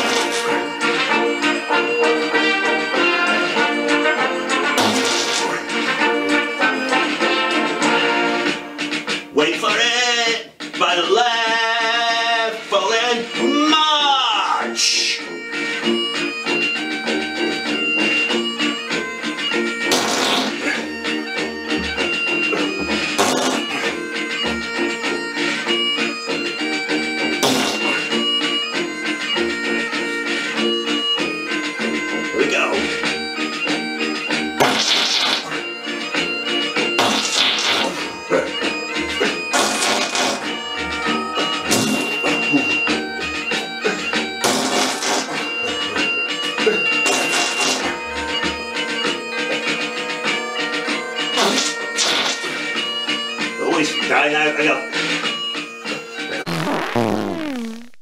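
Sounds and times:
bagpipe melody over drones: 0.1s - 8.5s, 15.0s - 56.4s
short loud bursts: 4.8s - 5.7s, 19.9s - 20.8s, 39.5s - 42.2s, 44.4s - 45.5s.

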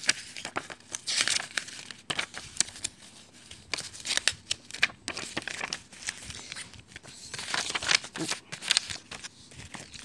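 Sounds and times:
glossy paper rustling: 0.0s - 10.0s.

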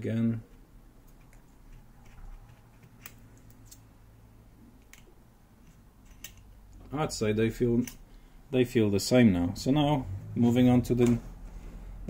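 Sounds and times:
feeler gauge clicking and scraping: 4.8s - 6.8s.

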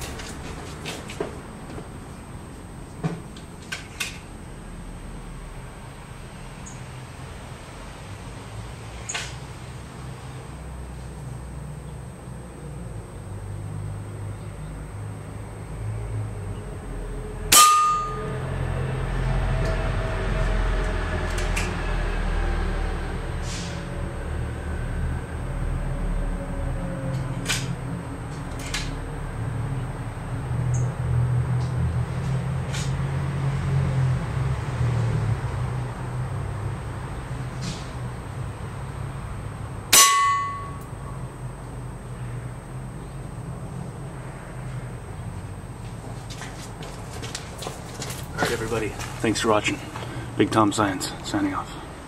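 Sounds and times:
metal bowl ringing: 17.5s - 18.5s, 39.9s - 40.9s.

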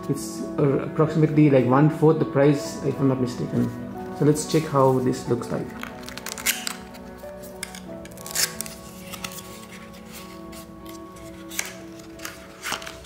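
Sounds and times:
background music: 0.0s - 13.0s
cardboard box being opened: 5.7s - 13.0s.

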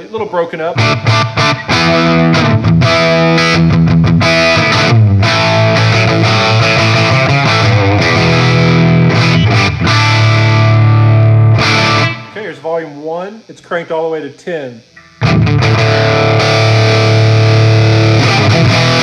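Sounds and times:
slightly distorted electric guitar: 0.0s - 19.0s.

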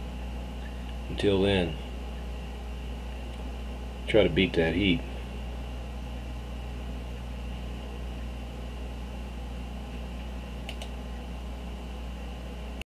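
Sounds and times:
computer fan hiss: 0.0s - 12.8s
electrical hum: 0.0s - 12.8s
quick clicks: 10.2s - 11.0s.

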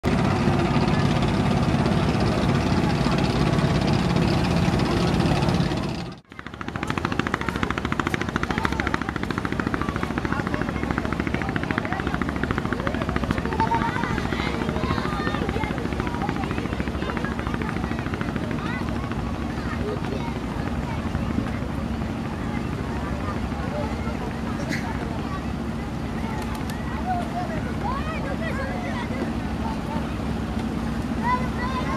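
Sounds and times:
boat engine chugging: 0.1s - 31.9s.

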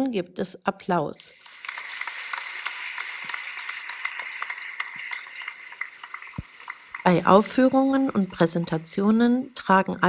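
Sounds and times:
audience clapping: 1.4s - 7.1s.

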